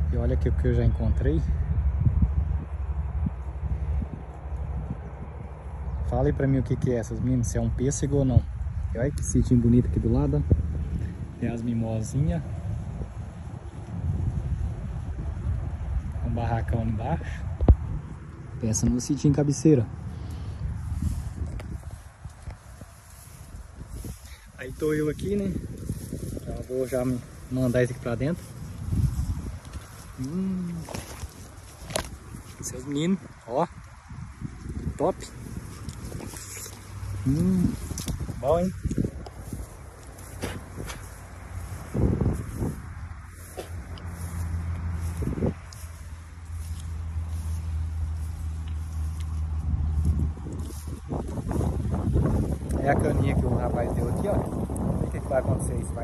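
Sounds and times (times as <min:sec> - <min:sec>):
wind rumble on microphone: 0:00.0 - 0:56.0
footsteps through grass: 0:07.1 - 0:56.0
footsteps thumps: 0:40.3 - 0:41.2.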